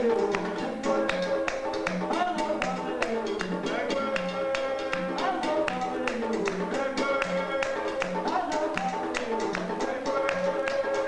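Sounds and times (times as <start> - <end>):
hand drums playing: 0.0 - 11.0
men singing: 0.0 - 11.0.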